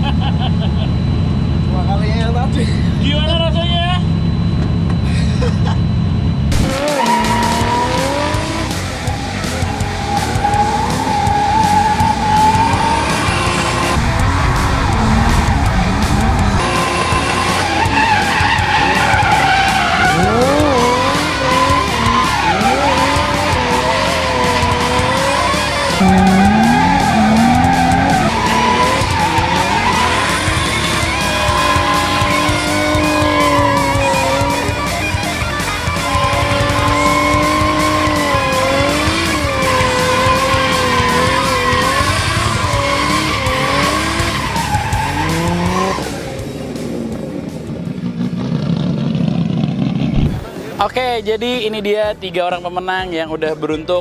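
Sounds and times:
car engine running: 0:00.0 - 0:50.6
tyres squealing: 0:15.4 - 0:46.1.

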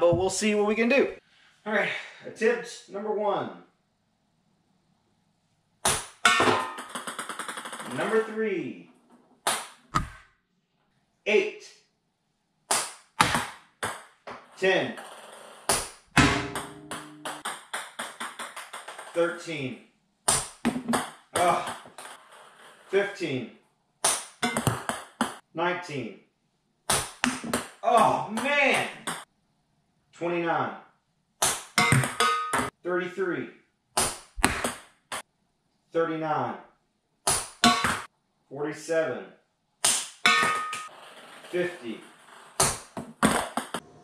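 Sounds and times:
club striking ping pong ball: 0:16.2 - 0:18.8, 0:24.4 - 0:25.0, 0:31.4 - 0:32.7, 0:37.6 - 0:38.1, 0:40.3 - 0:40.9.

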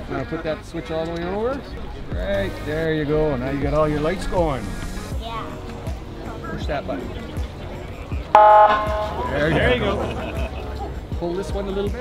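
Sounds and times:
motorcycle siren blast: 0:08.4 - 0:09.3.

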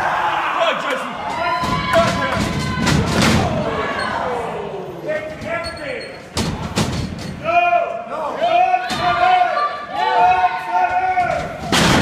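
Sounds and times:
spectators shouting: 0:00.0 - 0:05.1, 0:07.4 - 0:11.7.

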